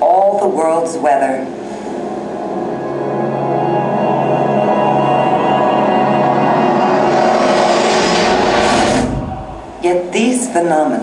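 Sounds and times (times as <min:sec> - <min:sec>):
sustained film music: 0:01.4 - 0:10.6
surf and wind rushing: 0:06.1 - 0:10.2.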